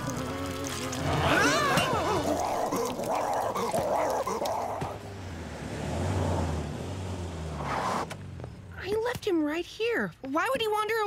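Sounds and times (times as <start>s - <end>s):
cartoon dog snarling and growling: 0.1s - 5.0s.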